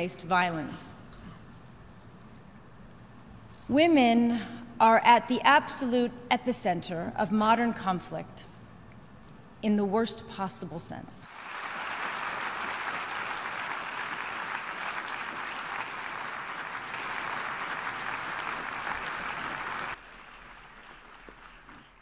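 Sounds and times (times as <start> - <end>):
audience applauding: 11.3 - 22.0.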